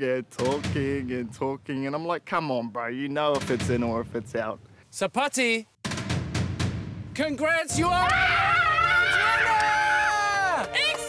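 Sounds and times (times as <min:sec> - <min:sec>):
woman screaming with joy: 0:08.0 - 0:11.0.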